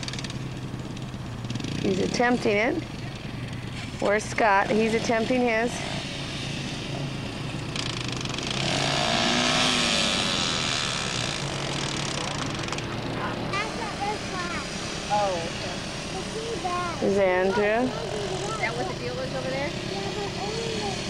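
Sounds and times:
quad engine running on sand: 0.0 - 21.0.

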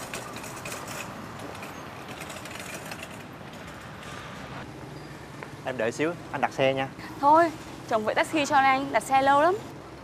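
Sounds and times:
wire shopping cart rattling: 0.0 - 4.0.

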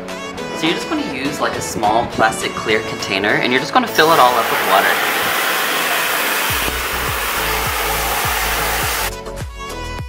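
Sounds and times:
water spraying into plastic tub: 4.0 - 9.1
background music with steady beat: 6.6 - 10.0.

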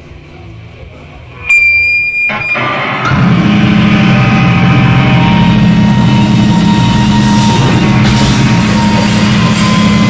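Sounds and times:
low bass notes: 1.2 - 10.0
guitar amp feedback squeal: 1.4 - 10.0
loud rock music: 1.4 - 10.0.

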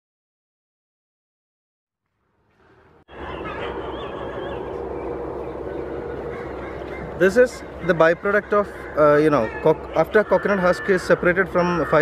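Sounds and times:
faint bird calls: 2.5 - 12.0.

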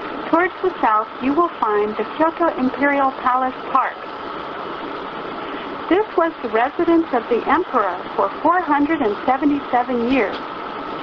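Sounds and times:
woman's recorded announcement: 0.2 - 4.1, 5.8 - 10.4.

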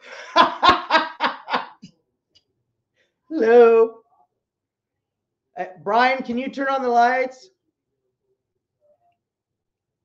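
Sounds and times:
man laughing: 0.0 - 1.9.

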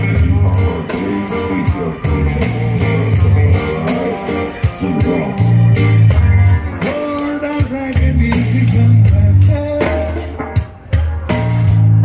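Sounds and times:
amplified electric guitar: 0.0 - 12.0.

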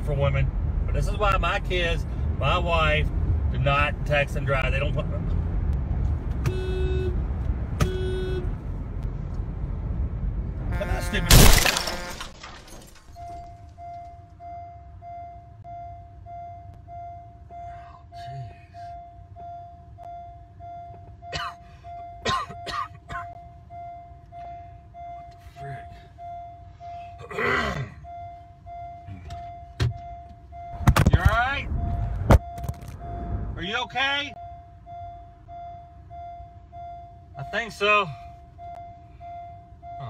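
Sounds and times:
car warning chime beeping: 13.1 - 22.6, 23.2 - 27.2, 28.0 - 40.0.

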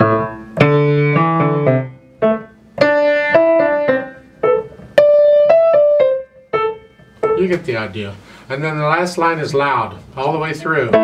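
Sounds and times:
grand piano playing: 0.0 - 8.1, 10.5 - 11.0.

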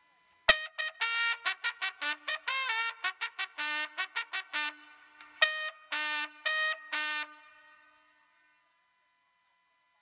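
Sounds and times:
trumpet note: 0.5 - 8.6.

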